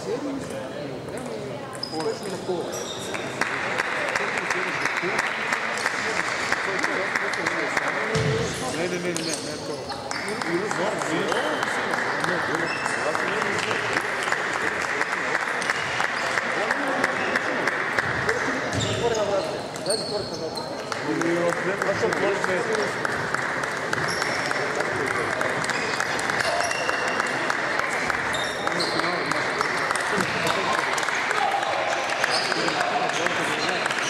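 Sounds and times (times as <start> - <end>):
murmur of voices: 0.0 - 34.0.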